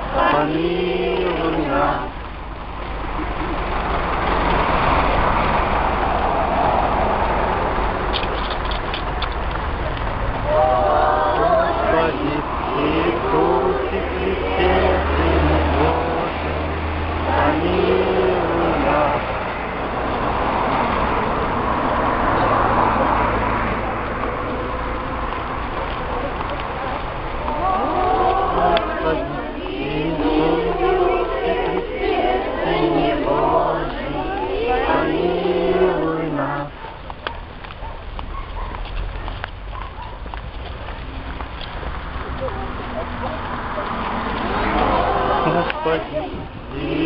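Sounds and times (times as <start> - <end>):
murmur of voices: 0.0 - 2.4, 9.7 - 37.1, 41.0 - 47.0
vehicle passing: 0.0 - 47.0.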